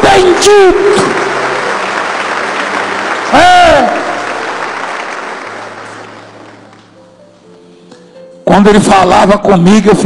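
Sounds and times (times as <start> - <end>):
congregation applauding: 0.0 - 7.0.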